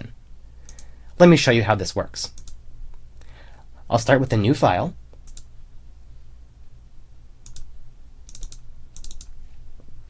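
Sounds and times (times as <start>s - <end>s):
steady low hum: 0.0s - 10.0s
computer mouse and keyboard clicks: 8.3s - 9.4s.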